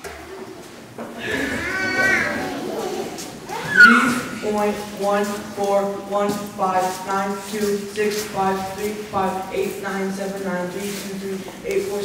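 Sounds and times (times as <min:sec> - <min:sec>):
child vocalizing through microphone: 0:01.2 - 0:04.4.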